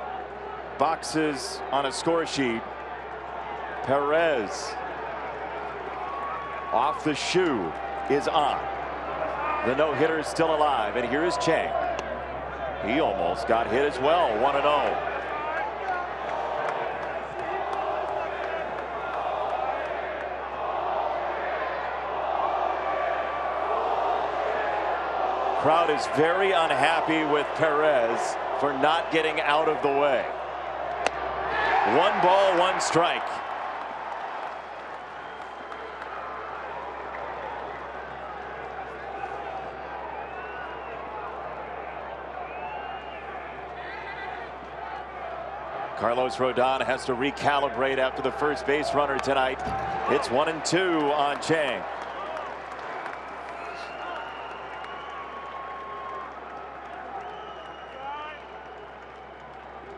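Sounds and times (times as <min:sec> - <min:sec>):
crowd calling out: 0:00.0 - 0:59.9
people clapping: 0:15.3 - 0:20.9, 0:32.0 - 0:39.7, 0:49.1 - 0:59.9.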